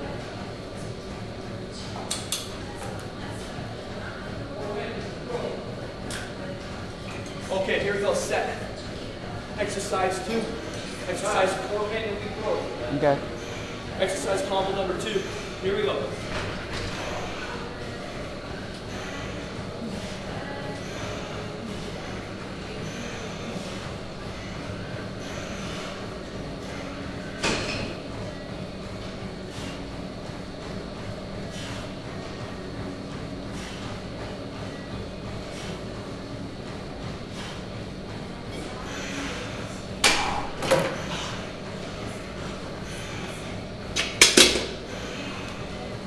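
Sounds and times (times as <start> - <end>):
gym hum: 0.0 - 46.0.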